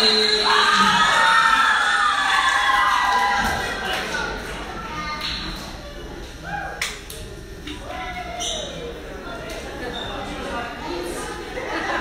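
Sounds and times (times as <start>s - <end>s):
crowd voices in echoing hall: 0.0s - 12.0s.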